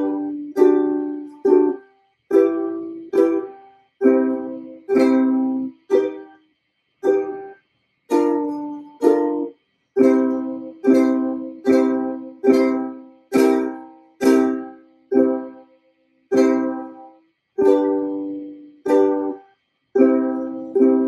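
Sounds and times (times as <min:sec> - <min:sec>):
ukulele chords strummed: 0:00.0 - 0:06.4, 0:07.0 - 0:15.6, 0:16.3 - 0:19.4, 0:20.0 - 0:21.0.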